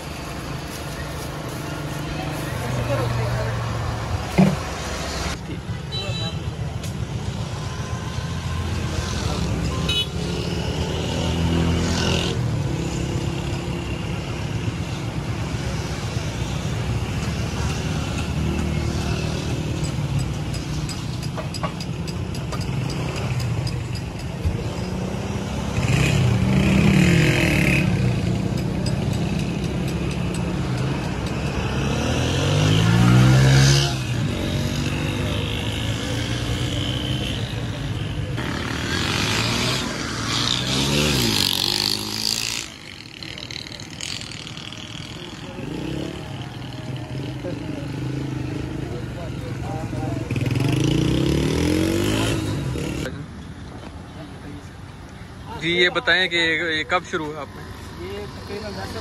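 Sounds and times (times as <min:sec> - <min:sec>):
voices: 0:00.0 - 0:07.8, 0:16.4 - 0:59.0
vehicles passing: 0:00.0 - 0:59.0.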